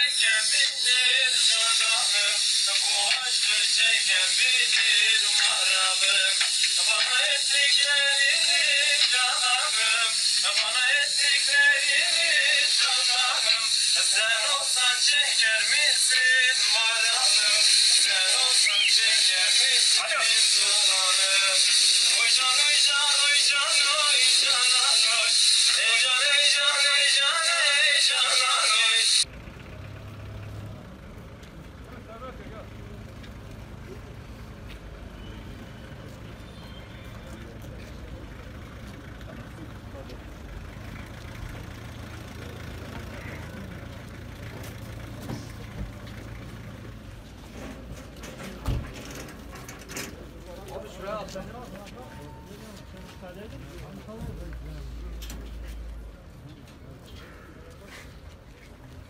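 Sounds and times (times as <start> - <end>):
faint voices: 0.0 - 29.2, 30.9 - 59.0
men singing folk song: 0.0 - 29.2
loud steady hiss: 0.1 - 29.2
vehicle engine idling: 29.2 - 58.3.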